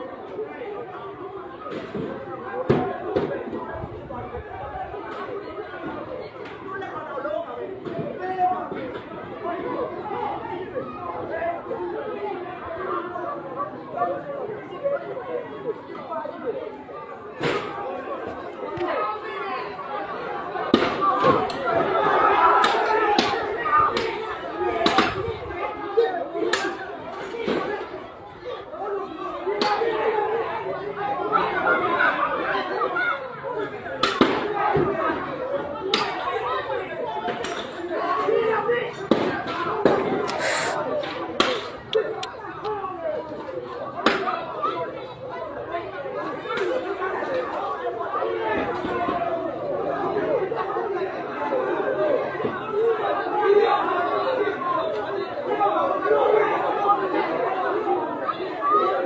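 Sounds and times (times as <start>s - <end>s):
babble of conversation: 0.0s - 59.0s
people talking over one another: 0.0s - 59.0s.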